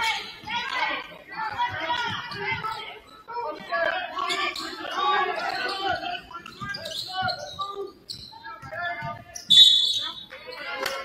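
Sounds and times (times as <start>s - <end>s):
voices echoing in gym: 0.0s - 11.0s.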